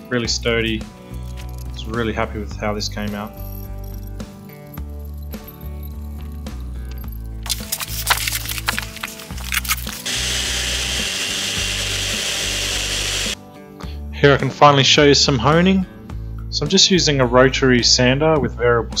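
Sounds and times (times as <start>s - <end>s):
background music: 0.0s - 19.0s
rotary sander on concrete: 10.0s - 13.4s.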